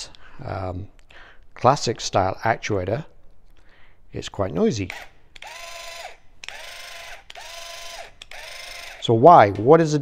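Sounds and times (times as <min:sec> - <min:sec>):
linear actuator motor whine: 0:04.9 - 0:09.0.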